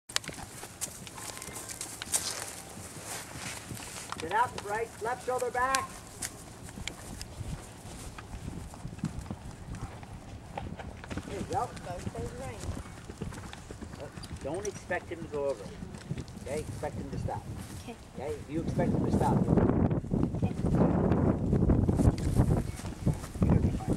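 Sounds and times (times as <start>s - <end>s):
horse hooves walking on grass: 0.1s - 23.9s
person speaking: 4.2s - 6.1s.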